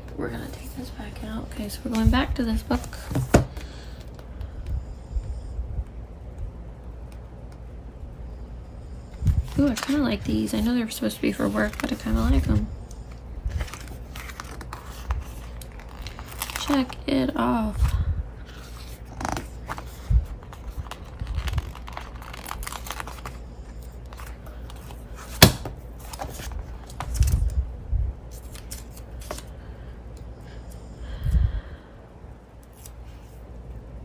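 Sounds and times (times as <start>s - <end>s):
paper rustling: 9.3s - 17.0s, 18.5s - 27.6s
stickers peeled off backing: 18.8s - 23.4s.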